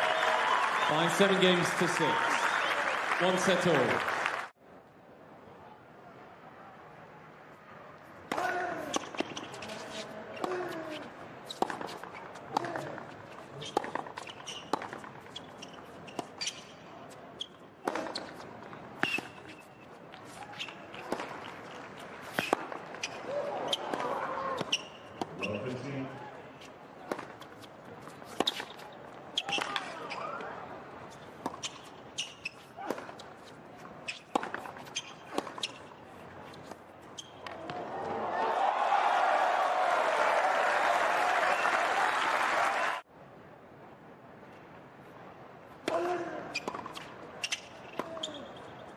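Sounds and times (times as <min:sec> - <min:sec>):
crowd applause: 0:00.0 - 0:04.5, 0:37.8 - 0:43.0
tennis racquet hitting ball: 0:08.3 - 0:13.1, 0:17.8 - 0:18.4, 0:19.0 - 0:25.6, 0:34.1 - 0:35.9
tennis ball bouncing: 0:08.3 - 0:16.6, 0:17.4 - 0:18.4, 0:19.0 - 0:25.7, 0:26.6 - 0:30.0, 0:31.1 - 0:37.8, 0:45.8 - 0:48.3.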